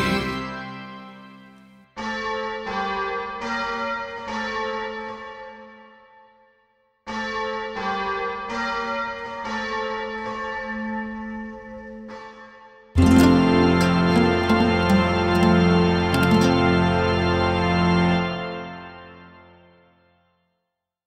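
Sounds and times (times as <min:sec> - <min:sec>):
bells ringing: 0:13.0 - 0:19.2.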